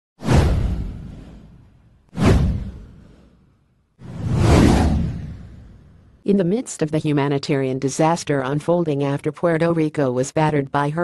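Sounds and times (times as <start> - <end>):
whoosh sound effects: 0.2 - 6.1.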